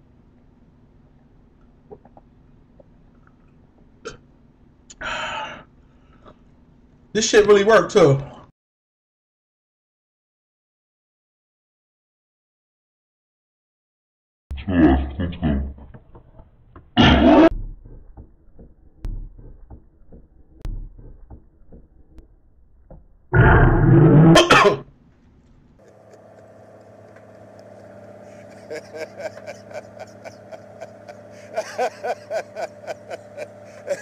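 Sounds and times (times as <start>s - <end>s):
man coughing and choking: 17.0s - 17.5s, 24.4s - 24.8s
steady ticking beat: 17.5s - 23.3s.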